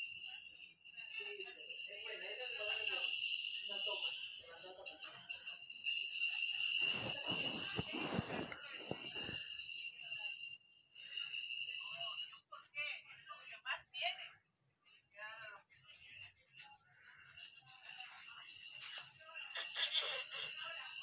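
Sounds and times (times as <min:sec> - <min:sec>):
high-pitched whine: 0:00.0 - 0:12.2
muddled voices: 0:01.0 - 0:10.2.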